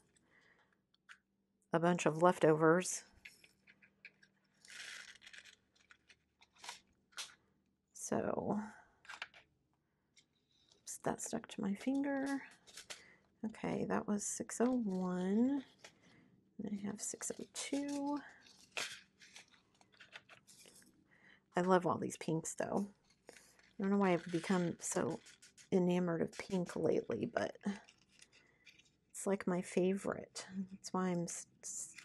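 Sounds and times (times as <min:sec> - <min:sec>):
sharp plastic crackles: 0:03.2 - 0:07.4
plastic bag rustling and crinkling: 0:04.4 - 0:07.4, 0:22.9 - 0:29.0.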